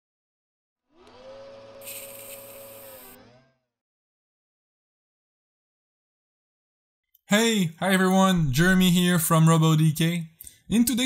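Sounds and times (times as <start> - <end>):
whirring motor sound effect: 0.9 - 3.8.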